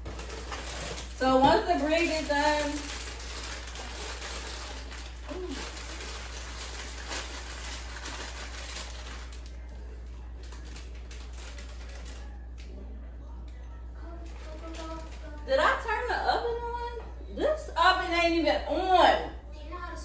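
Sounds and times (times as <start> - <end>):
plastic bag rustling: 0.0 - 12.8, 14.0 - 16.1.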